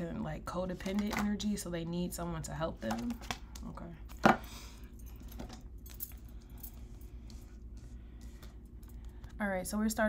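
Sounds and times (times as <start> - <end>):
metallic jingle of bracelets: 4.9 - 6.8.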